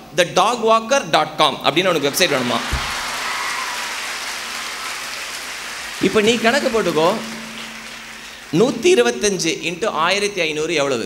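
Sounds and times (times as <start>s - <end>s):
audience applauding: 1.8s - 9.4s.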